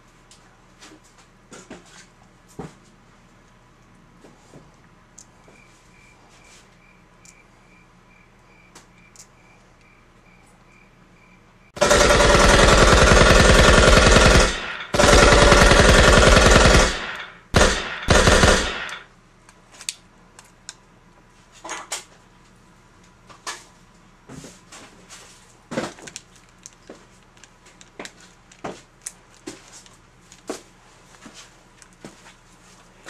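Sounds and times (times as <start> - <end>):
cricket chirping: 5.4 - 11.8
loud rapid rattling: 11.8 - 19.0.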